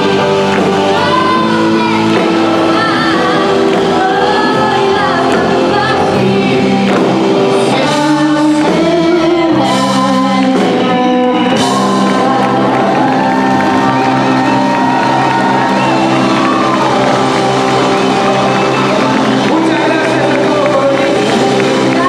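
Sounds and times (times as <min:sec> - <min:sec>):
crowd clapping and cheering: 0:00.0 - 0:22.0
live band with singer: 0:00.0 - 0:22.0.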